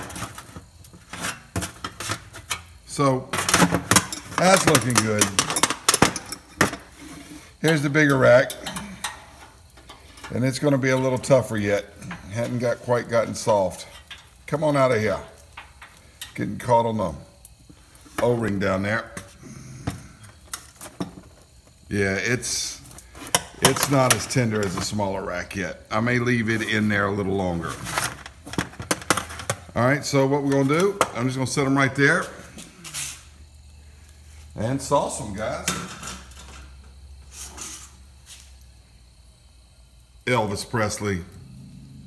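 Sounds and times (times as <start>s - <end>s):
metal scrapes and knocks: 0.0s - 2.7s.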